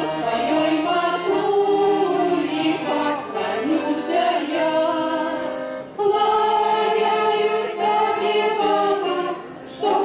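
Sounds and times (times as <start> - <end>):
women's choir singing in harmony: 0.0 - 10.0.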